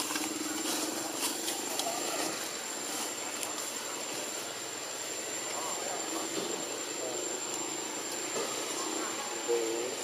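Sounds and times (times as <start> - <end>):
faint distant voices: 0.0 - 10.0
high-pitched whine: 0.0 - 10.0.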